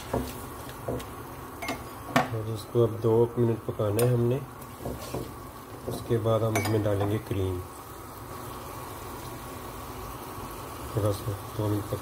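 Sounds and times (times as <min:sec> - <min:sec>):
stove rushing hum: 0:00.0 - 0:12.0.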